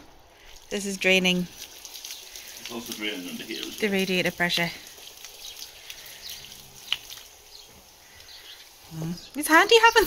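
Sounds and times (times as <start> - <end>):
water trickling from a pipe: 0.0 - 10.0.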